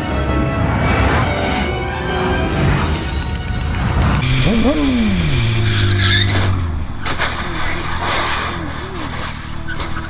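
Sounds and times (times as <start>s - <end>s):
motorcycle engine: 0.6s - 8.1s
tyre squeal: 5.4s - 10.0s.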